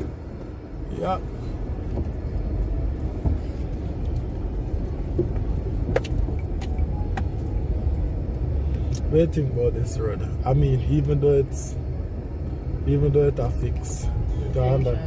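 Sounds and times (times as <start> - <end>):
tyre and road rumble: 0.0 - 9.4
light rattles and clicks: 1.8 - 8.1.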